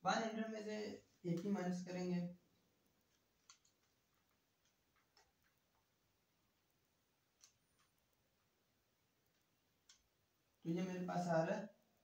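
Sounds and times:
man speaking: 0.0s - 2.4s, 10.6s - 11.8s
faint scattered clicks: 3.0s - 5.9s, 7.3s - 8.5s, 9.2s - 10.2s.

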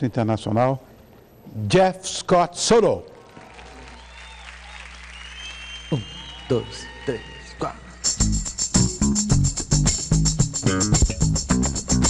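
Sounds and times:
audience applauding: 3.1s - 8.2s.

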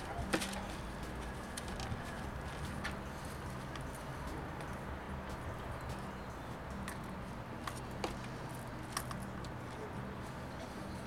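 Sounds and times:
faint clicks and crackles in soil: 0.0s - 4.8s.

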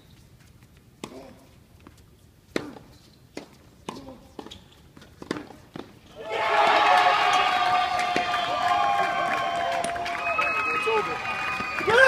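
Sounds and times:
people yelling and cheering: 6.1s - 12.0s.

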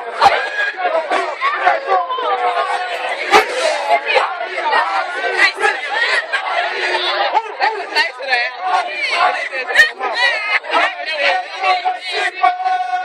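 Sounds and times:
crowd talking and shouting: 0.0s - 13.0s.

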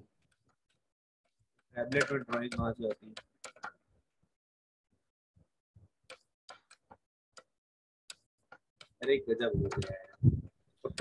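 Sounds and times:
mouse button clicks: 9.6s - 9.9s.

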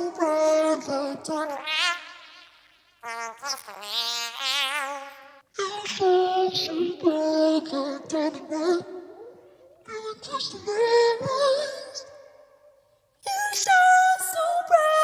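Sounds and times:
pitch-shifted singing voice: 0.0s - 15.0s.

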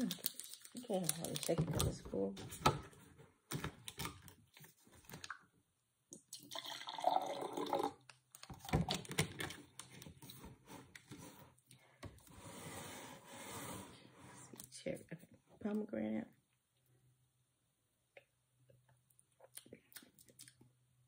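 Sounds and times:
juice pouring into glass: 6.2s - 8.1s.

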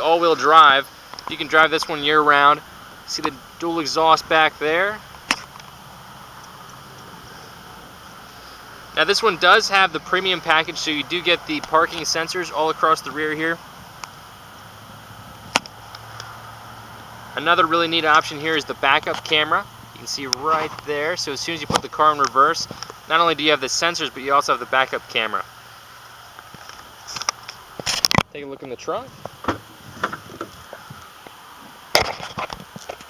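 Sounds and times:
light clicks of car trunk: 29.2s - 30.8s
car trunk lid clunk: 29.3s - 30.5s.

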